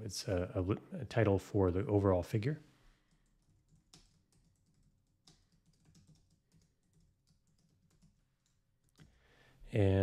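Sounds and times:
computer keyboard keystrokes: 0:03.1 - 0:09.1.

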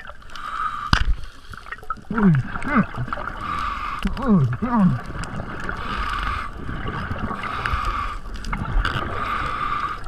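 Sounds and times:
muffled underwater water noise: 0:00.0 - 0:10.0.

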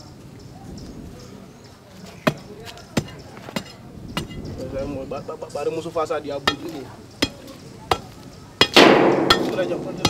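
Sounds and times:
metal bar striking downward: 0:08.6 - 0:10.0.

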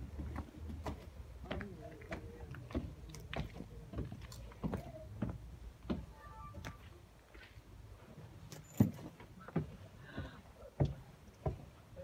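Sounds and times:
footsteps on wooden stairs: 0:00.0 - 0:07.6, 0:08.6 - 0:12.0.

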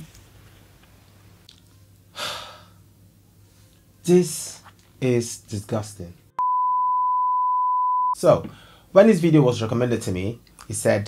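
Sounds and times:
steady test-pattern beep: 0:06.4 - 0:08.2.

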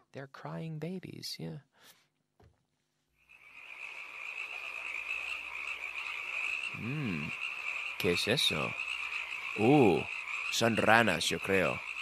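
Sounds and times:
frogs calling: 0:03.2 - 0:12.0.

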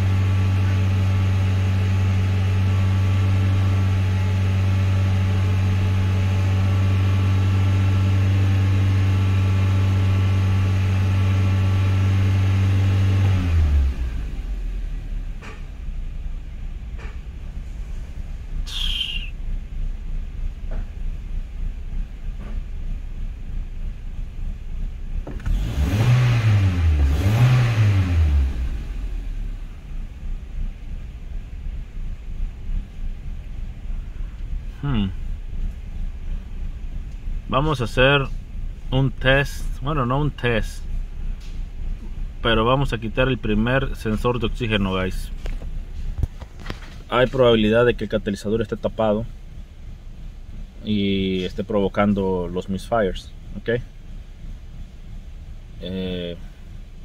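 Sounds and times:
engine revving: 0:00.0 - 0:15.7, 0:25.2 - 0:30.1
engine idle rumble: 0:00.0 - 0:25.7, 0:28.2 - 0:57.0
car engine running: 0:00.0 - 0:57.0.

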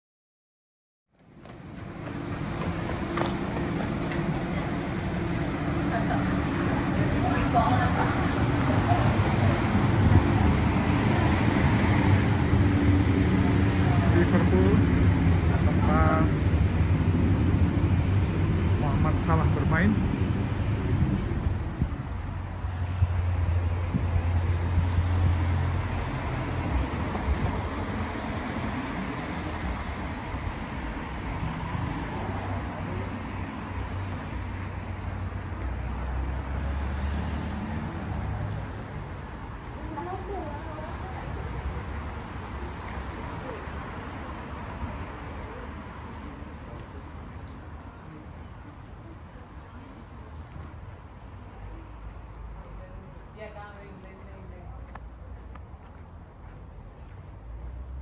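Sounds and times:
road traffic with low hum: 0:01.1 - 0:58.0
wind buffeting microphone: 0:20.0 - 0:27.8.

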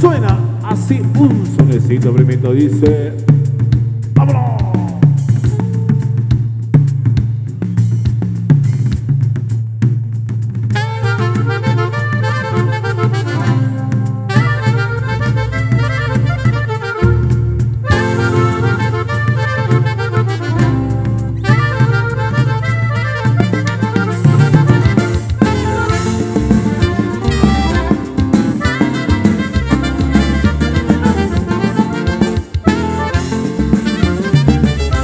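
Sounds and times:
drum kit beat: 0:00.0 - 0:35.0
accordion melody: 0:10.8 - 0:35.0
walking bass line: 0:10.8 - 0:35.0.

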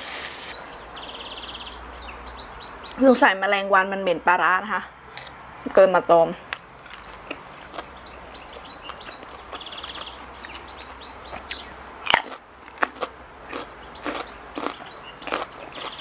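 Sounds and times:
small birds chirping: 0:00.5 - 0:16.0
crisp bite and chewing crunches: 0:06.9 - 0:08.0, 0:11.3 - 0:16.0.

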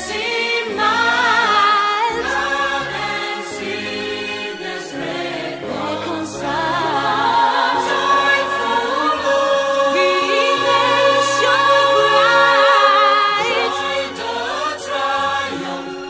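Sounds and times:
choir singing: 0:00.0 - 0:16.0
held instrumental chords: 0:02.4 - 0:16.0.

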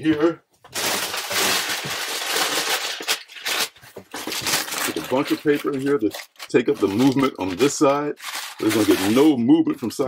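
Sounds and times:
paper crumpling: 0:00.7 - 0:09.4.

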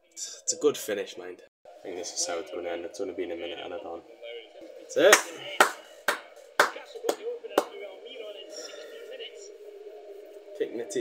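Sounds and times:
television match commentary: 0:00.2 - 0:09.7.

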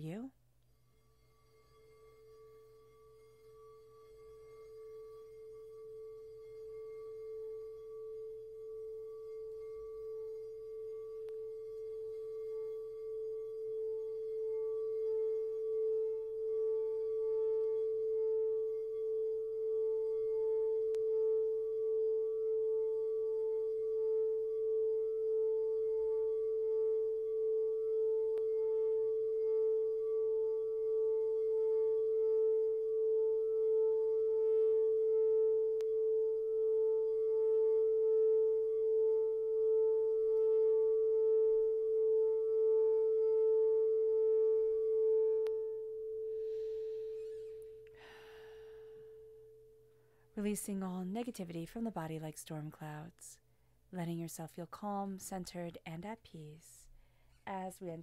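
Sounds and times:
singing bowl tone: 0:00.0 - 0:53.0.

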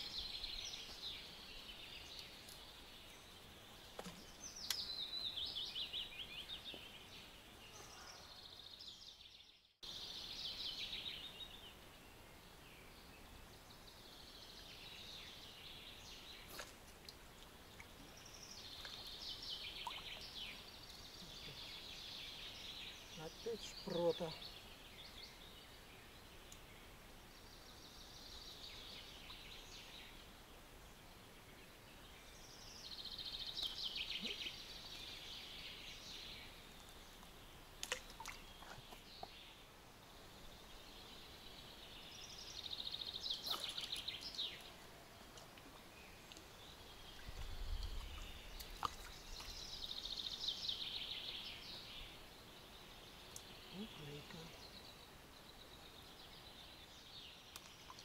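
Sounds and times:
songbird song: 0:00.0 - 0:58.0.

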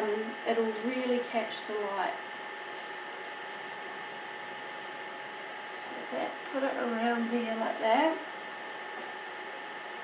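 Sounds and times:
low hiss with faint hum: 0:00.0 - 0:10.0.

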